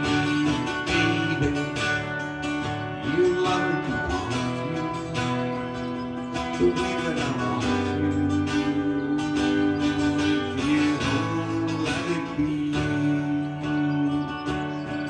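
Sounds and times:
acoustic guitar music: 0.0 - 15.0.

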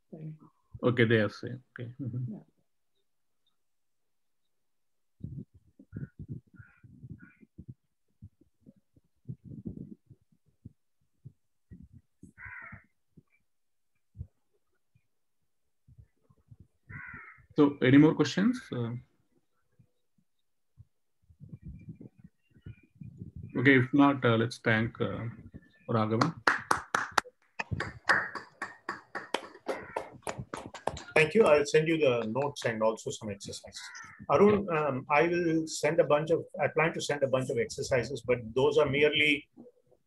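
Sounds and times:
people clapping: 26.1 - 33.0.

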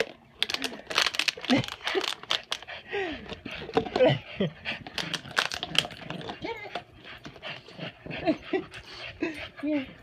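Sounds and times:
plastic bottle crackling: 0.0 - 2.6, 4.9 - 6.3.

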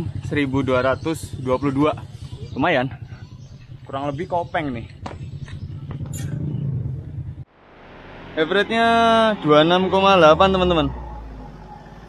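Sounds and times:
wind and road rumble: 0.0 - 12.0.

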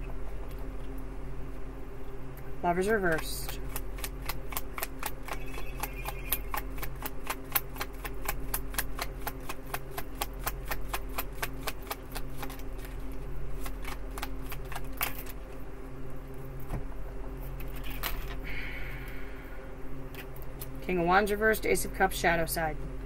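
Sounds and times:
low hum: 0.0 - 23.0
cards being shuffled: 3.1 - 15.4.

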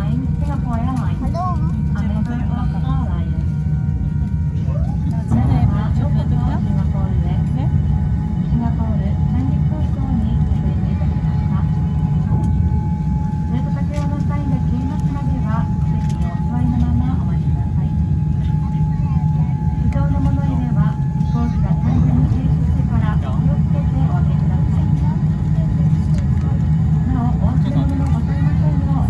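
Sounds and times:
airliner cabin rumble: 0.0 - 29.0
passengers talking: 0.0 - 29.0.

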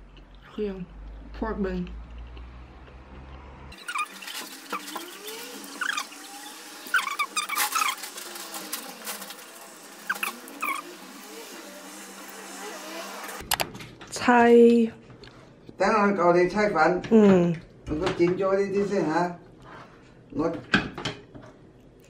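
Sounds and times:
chewing and mouth sounds: 0.0 - 1.2, 1.8 - 3.5.

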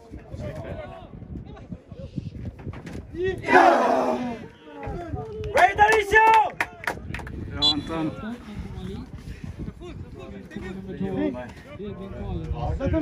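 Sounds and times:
people shouting on football pitch: 3.3 - 6.5.

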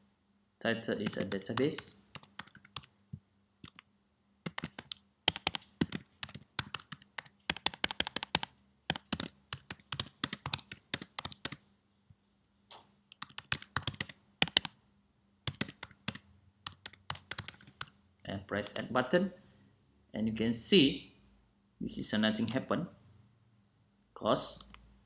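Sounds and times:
computer keyboard typing: 1.0 - 2.9, 3.6 - 11.6, 13.2 - 14.8, 15.5 - 17.9.

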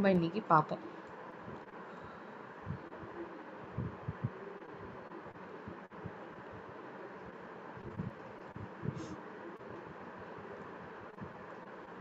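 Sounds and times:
microphone background hiss: 0.0 - 12.0
soft low thumps: 3.8 - 4.3.

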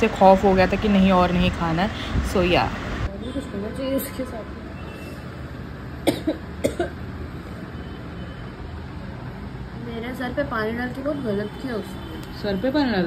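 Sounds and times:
person coughing: 6.0 - 7.0.

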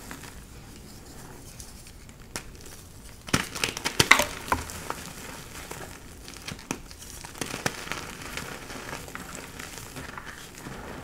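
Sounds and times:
chalk blocks crunching and crumbling: 3.6 - 5.1.

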